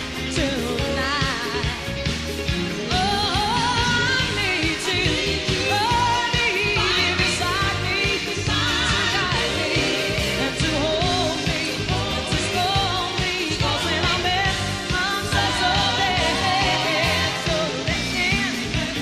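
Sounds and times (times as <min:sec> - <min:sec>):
live band music: 0:00.0 - 0:19.0
woman singing: 0:00.2 - 0:02.0, 0:02.8 - 0:19.0.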